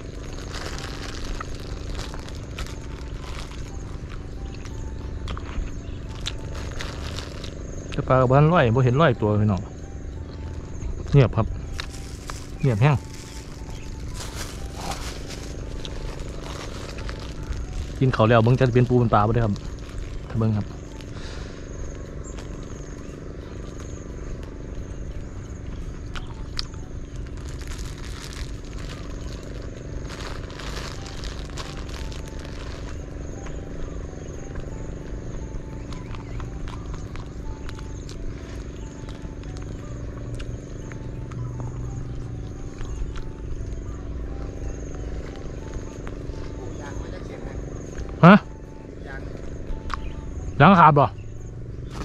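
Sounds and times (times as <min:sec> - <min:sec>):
crackling rustle: 0:00.0 - 0:08.1, 0:11.0 - 0:24.8, 0:26.0 - 0:39.8
small engine humming: 0:00.0 - 0:52.0.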